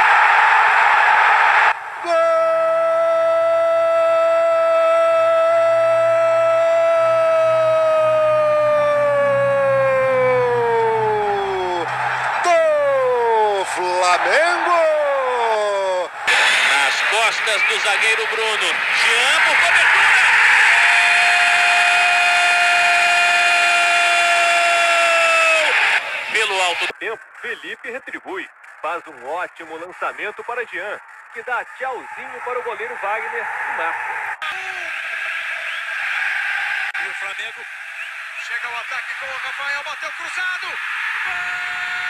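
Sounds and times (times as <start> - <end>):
crowd noise: 0.0 - 2.5, 4.4 - 27.0
commentator's long goal cry: 2.0 - 13.6
commentator talking: 11.3 - 20.2, 26.3 - 31.0.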